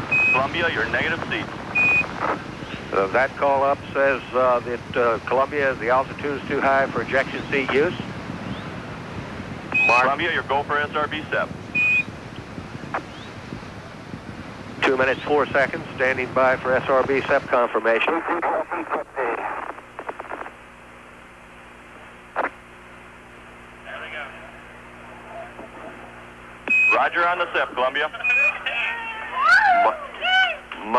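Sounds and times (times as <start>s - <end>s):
radio hiss: 0.0s - 30.9s
short high beep: 9.7s - 10.1s, 26.7s - 27.0s.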